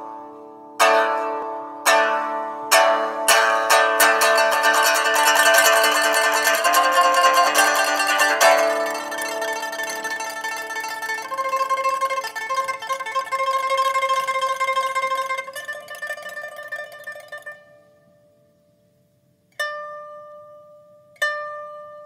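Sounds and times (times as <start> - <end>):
sharp plucked note: 0.8 - 17.9
pipa playing: 1.9 - 17.6.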